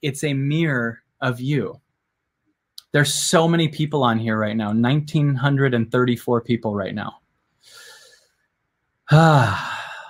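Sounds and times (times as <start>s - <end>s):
faint breath: 7.5s - 8.4s, 9.2s - 10.0s
man sighing: 9.1s - 10.0s.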